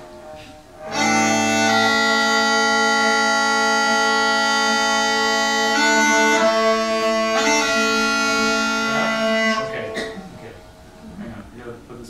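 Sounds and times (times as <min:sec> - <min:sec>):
bagpipe held chord: 0:00.0 - 0:11.4.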